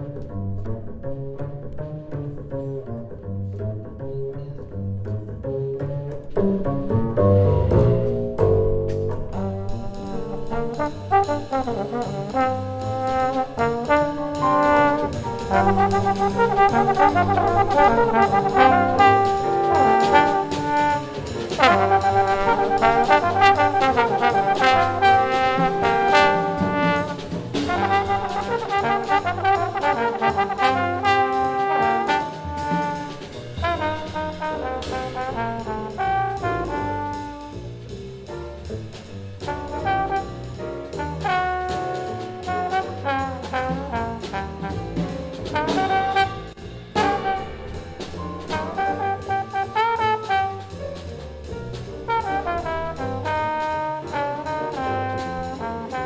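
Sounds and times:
walking upright bass: 0.0 - 56.0
drum kit: 5.8 - 56.0
trombones playing melody: 9.3 - 37.8, 39.5 - 51.1, 51.8 - 56.0.

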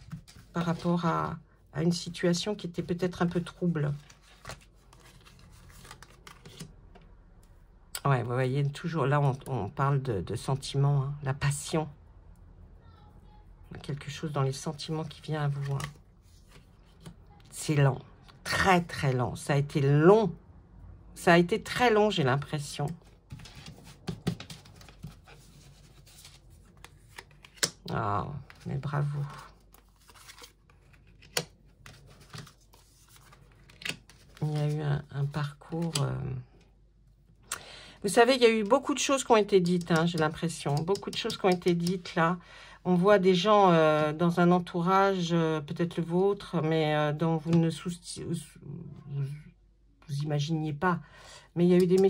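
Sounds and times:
cards clicking and sliding: 4.0 - 6.7, 23.3 - 27.8, 29.8 - 34.7.

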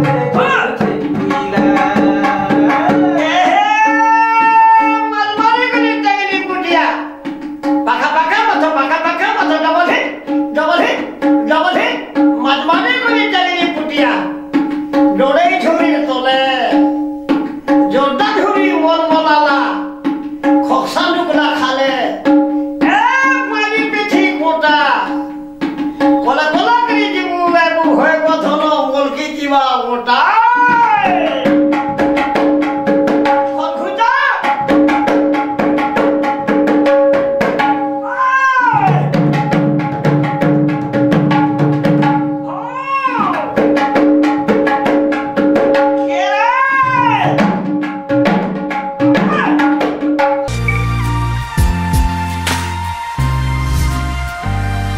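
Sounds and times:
man singing folk song: 0.0 - 6.0
barrel drum played by hand: 0.0 - 29.5, 30.3 - 52.9
short high cry: 3.1 - 5.1, 38.0 - 39.1, 42.5 - 43.5.

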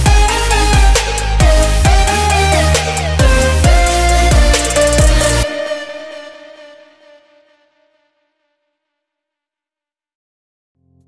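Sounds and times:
held music tones: 0.0 - 6.7.

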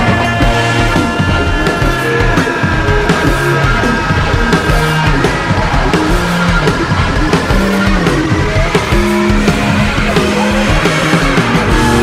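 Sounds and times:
distorted electric guitar: 0.0 - 12.0
drums: 0.0 - 12.0.

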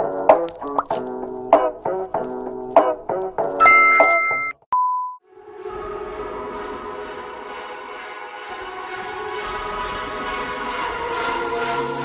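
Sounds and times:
short steady beep: 3.6 - 5.2.

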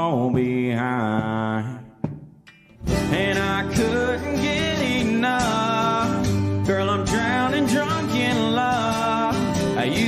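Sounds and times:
country band playing: 2.5 - 10.0.

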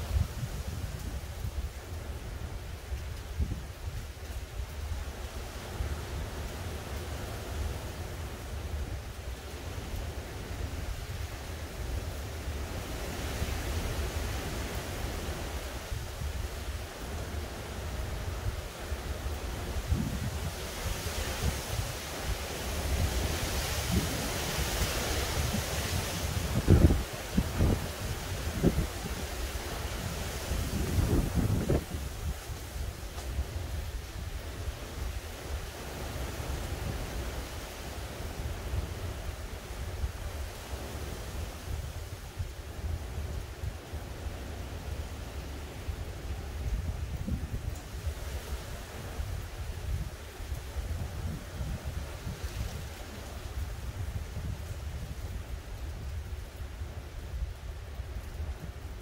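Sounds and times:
wind buffeting microphone: 0.0 - 37.6, 45.3 - 59.0
wind blowing through trees: 0.0 - 59.0.

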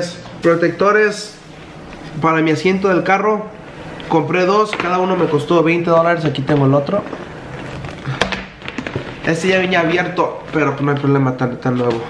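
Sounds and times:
packaged fabric rustling: 6.4 - 11.0.

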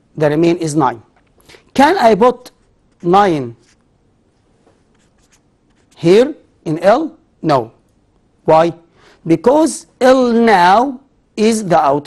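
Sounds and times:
marker writing on paper: 2.5 - 3.9, 4.7 - 6.1.

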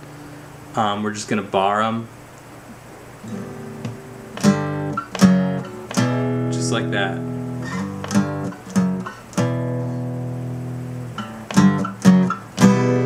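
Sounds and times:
acoustic guitar strumming chords: 3.0 - 13.0.

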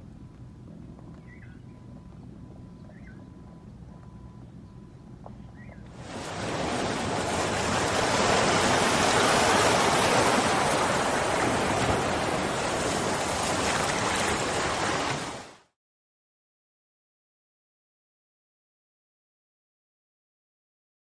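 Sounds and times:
steady rushing noise: 5.9 - 15.6.

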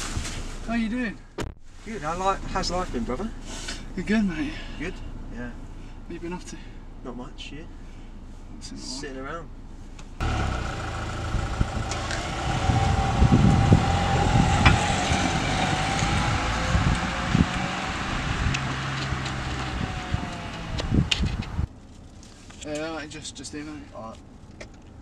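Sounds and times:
car driving along street: 1.9 - 25.0
low rumble on microphone: 10.1 - 21.7.

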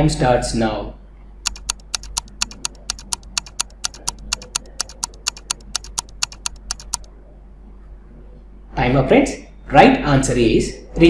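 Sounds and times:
countdown timer ticking: 1.5 - 7.1.

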